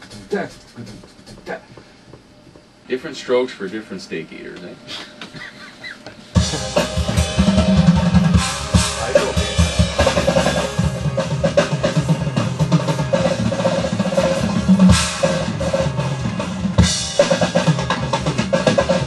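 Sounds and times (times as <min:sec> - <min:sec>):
acoustic drum kit playing: 0:06.4 - 0:19.0
cymbal crashes: 0:06.4 - 0:19.0.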